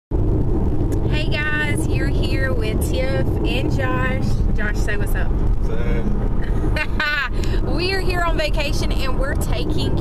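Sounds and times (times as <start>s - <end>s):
car cabin road and engine rumble: 0.1s - 10.0s
woman's voice: 1.1s - 5.3s, 6.8s - 10.0s.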